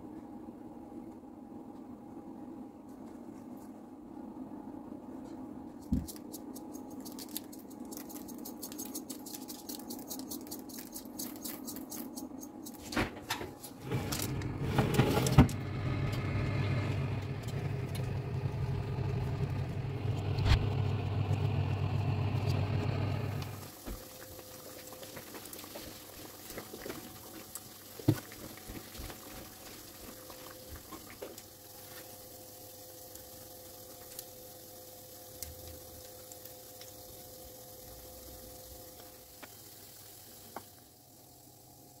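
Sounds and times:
oven fan humming: 0.0s - 42.0s.

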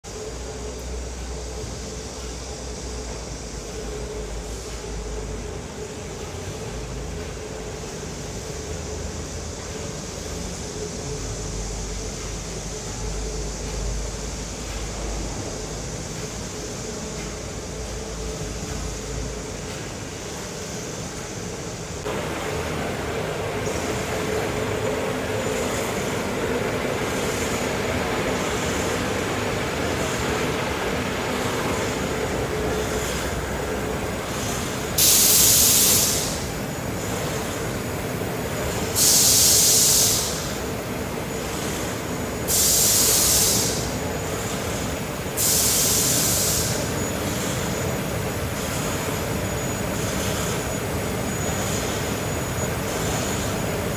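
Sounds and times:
production line machinery noise: 0.0s - 53.9s.

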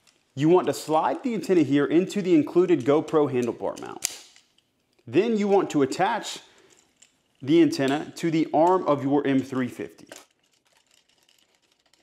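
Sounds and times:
faint light clicks and rustles: 6.4s - 8.0s, 10.0s - 12.0s.

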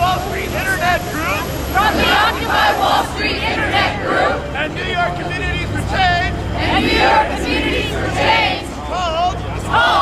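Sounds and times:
crowd shouting in unison: 1.8s - 4.5s, 6.6s - 8.8s, 9.6s - 10.0s.

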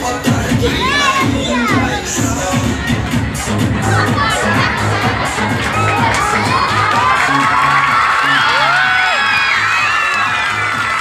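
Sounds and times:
loud dance music: 0.0s - 11.0s
audience shouting and cheering: 0.6s - 11.0s.

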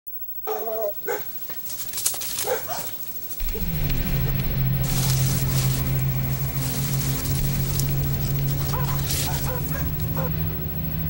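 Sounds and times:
dog barking: 0.4s - 1.4s, 2.4s - 3.0s, 8.6s - 10.4s
music with low held note: 3.4s - 11.0s.

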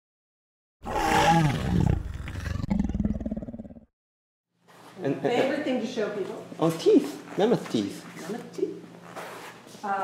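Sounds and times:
deep roar turning to pulsing growl: 0.8s - 3.9s.

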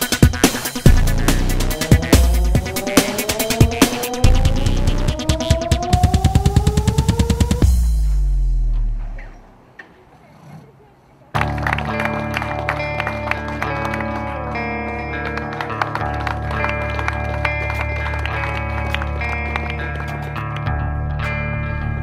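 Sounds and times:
music with chords and drum beat: 0.0s - 9.0s.

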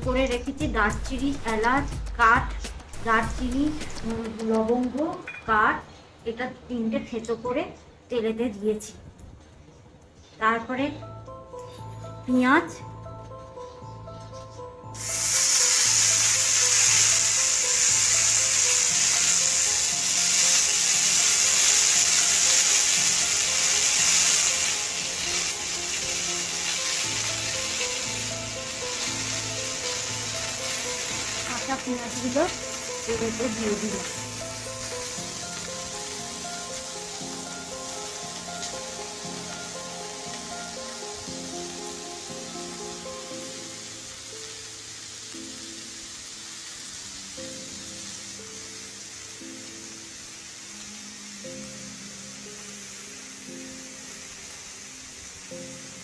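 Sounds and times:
onions sizzling in hot oil: 14.8s - 56.0s.

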